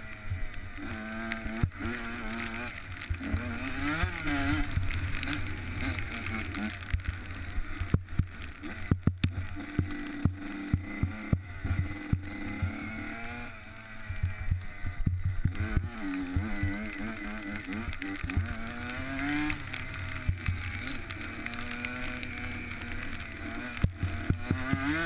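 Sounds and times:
motocross bike engine revving: 0.0s - 25.0s.

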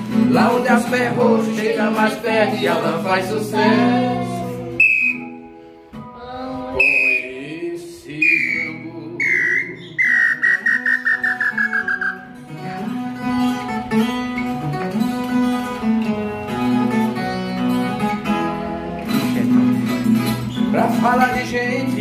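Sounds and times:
strummed viola: 0.0s - 22.0s
wooden bird-call whistle: 4.8s - 5.5s, 6.8s - 7.3s, 8.2s - 12.3s.

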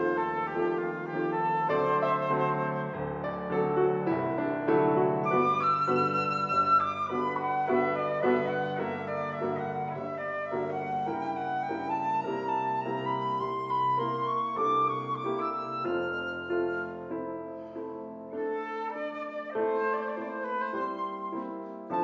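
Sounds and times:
flute melody: 0.0s - 22.0s
piano chords: 0.0s - 22.0s.

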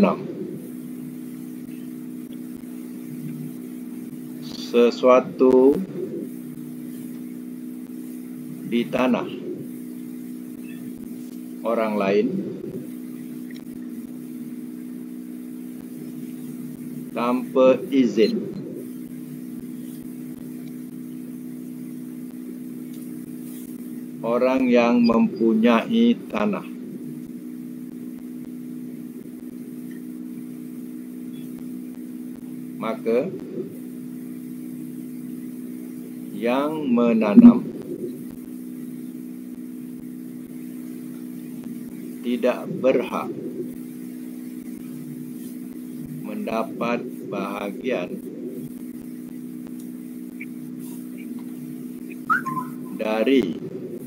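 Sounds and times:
low steady tone: 0.0s - 11.8s, 37.3s - 38.3s, 50.3s - 53.1s
steady electrical hum: 0.0s - 54.0s
rising whistle-like chirp: 52.2s - 53.0s.

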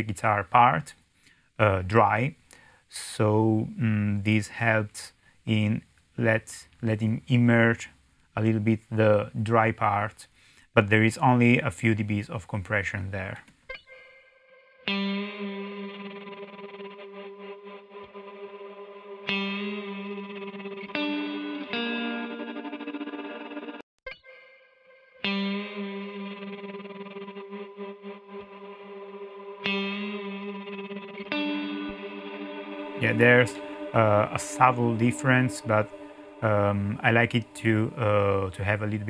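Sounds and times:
electric guitar chords with reverb: 13.8s - 39.0s.

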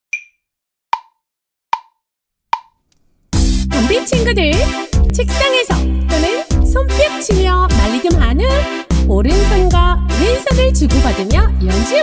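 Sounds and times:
backing music with strong bass: 3.4s - 12.0s.

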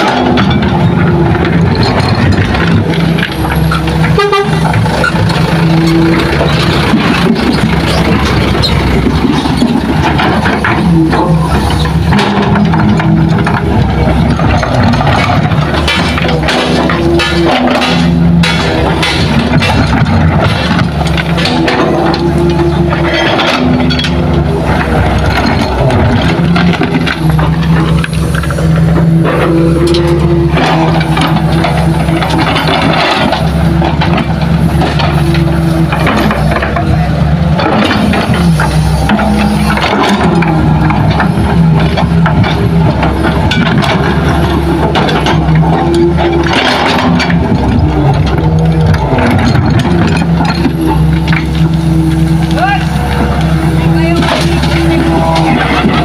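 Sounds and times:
higher engine tone: 0.0s - 43.6s
excavator diesel engine running: 0.0s - 56.0s.

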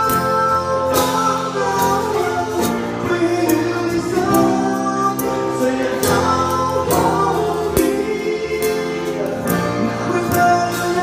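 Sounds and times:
drum kit playing: 0.0s - 11.0s
pop song with singing: 0.0s - 11.0s.

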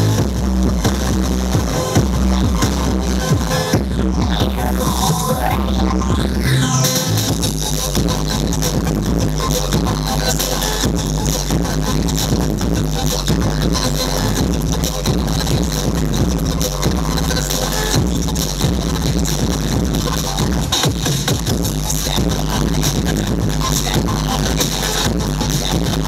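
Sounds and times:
breakbeat dance music: 0.0s - 26.0s.

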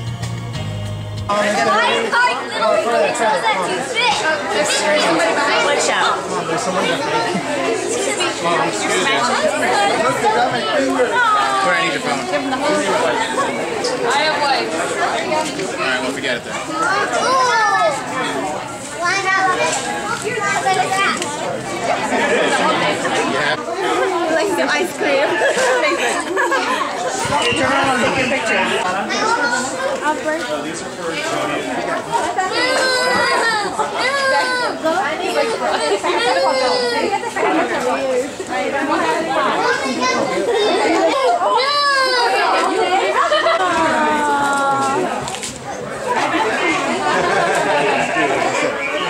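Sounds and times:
overlapping chatter: 0.0s - 49.0s
people talking excitedly: 1.2s - 49.0s
people laughing: 4.5s - 13.8s, 21.7s - 28.8s, 31.9s - 45.3s, 45.9s - 49.0s
people laughing high-pitched: 25.2s - 28.4s, 40.5s - 45.2s, 46.0s - 49.0s.

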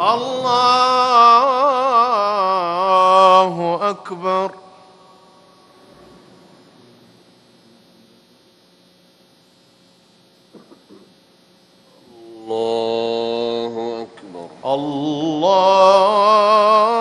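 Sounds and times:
person chanting over loudspeakers: 0.0s - 5.4s, 12.0s - 17.0s
hum of reverberant hall: 0.0s - 17.0s.

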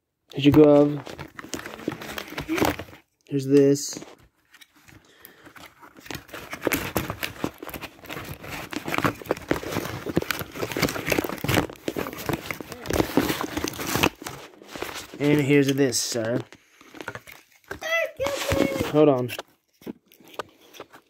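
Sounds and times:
rustling and crinkling: 0.3s - 21.0s.

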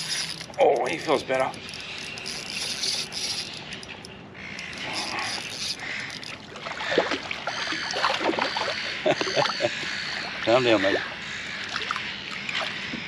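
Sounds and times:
fishing reel winding: 0.0s - 6.4s
small clicks and knocks: 0.0s - 6.4s
light water sounds: 4.7s - 13.0s.

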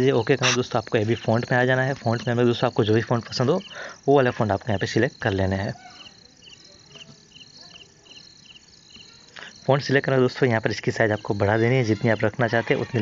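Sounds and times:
voice: 0.0s - 5.8s, 9.4s - 13.0s
crickets chirping: 0.0s - 13.0s.

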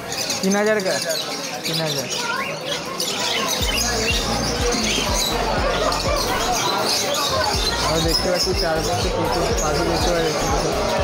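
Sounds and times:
lovebirds chattering and squawking: 0.0s - 11.0s
background music with steady beat: 3.6s - 11.0s.

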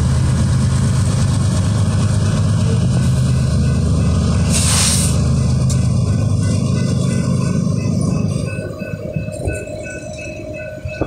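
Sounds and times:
diesel locomotives rumbling: 0.0s - 11.0s
freight cars rolling on rails: 0.0s - 11.0s
crossing bell dinging: 2.2s - 4.5s, 5.1s - 11.0s.

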